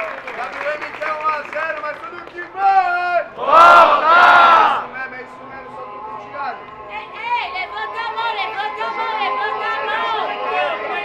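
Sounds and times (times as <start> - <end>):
crowd shouting in unison: 3.3 - 5.0.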